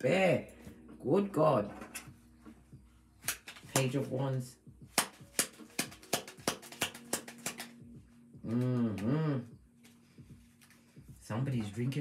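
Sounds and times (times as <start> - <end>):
cards being shuffled: 3.2 - 4.1, 4.9 - 7.8, 9.8 - 10.9.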